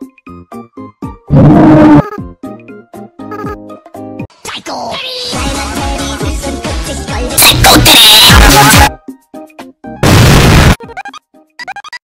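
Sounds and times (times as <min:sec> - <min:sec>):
choppy music stabs: 0:05.2 - 0:09.0
loud distorted noise burst: 0:10.0 - 0:10.8.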